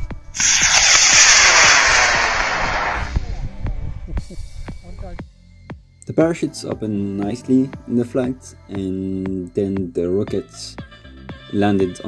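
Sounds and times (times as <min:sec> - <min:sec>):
rocket motor rushing hiss: 0:00.3 - 0:03.6.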